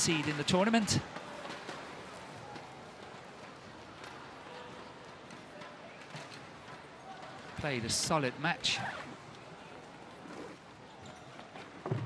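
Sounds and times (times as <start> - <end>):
low crowd noise: 0.0 - 12.0.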